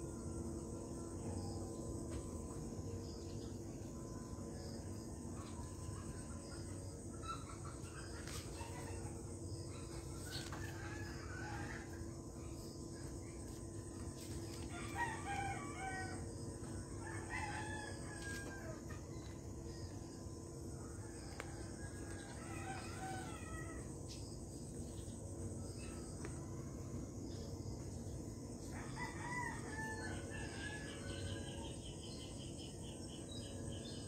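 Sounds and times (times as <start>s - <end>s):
steady low hum: 0.0s - 34.0s
rooster crowing: 14.7s - 16.4s, 17.0s - 19.0s, 22.0s - 23.9s, 28.7s - 31.8s.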